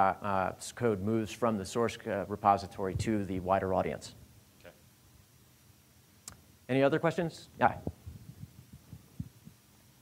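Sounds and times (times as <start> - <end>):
microphone handling thumps: 2.8 - 3.6, 7.6 - 9.6.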